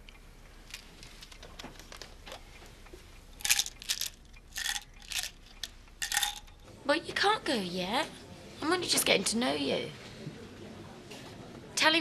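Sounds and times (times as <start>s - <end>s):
tablets rattling in pill bottle: 3.4s - 6.5s.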